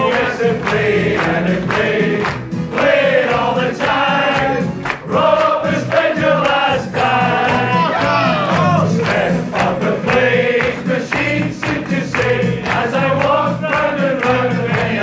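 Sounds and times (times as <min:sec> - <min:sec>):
backing track with beat: 0:00.0 - 0:15.0
people singing along: 0:00.0 - 0:15.0
man singing through microphone: 0:06.2 - 0:15.0.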